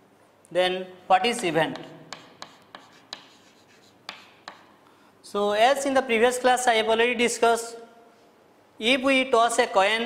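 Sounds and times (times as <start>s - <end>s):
chalk tapping and scratching: 1.3s - 4.8s.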